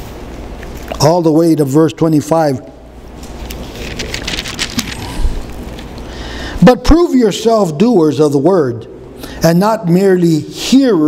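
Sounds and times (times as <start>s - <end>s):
paper rustling: 3.3s - 6.0s.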